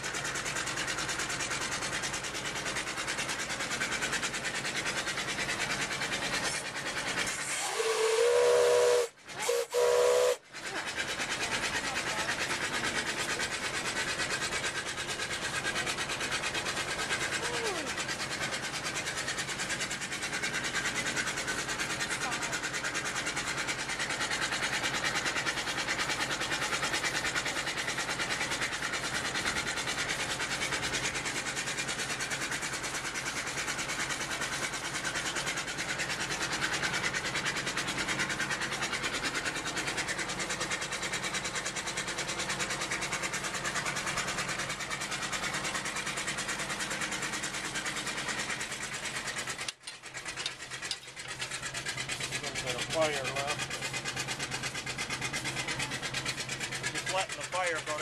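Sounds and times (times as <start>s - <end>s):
steam engine chugging: 0.0s - 58.0s
mechanical clatter: 42.7s - 58.0s.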